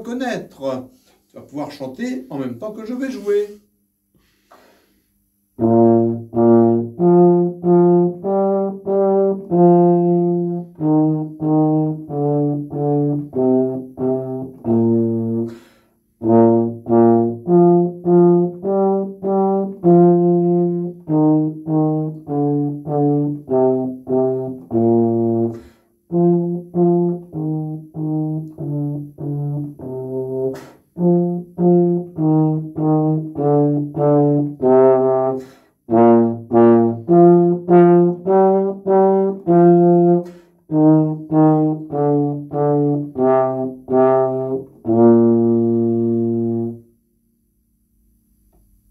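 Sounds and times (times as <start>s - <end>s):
tuba playing a melody: 5.5s - 47.1s.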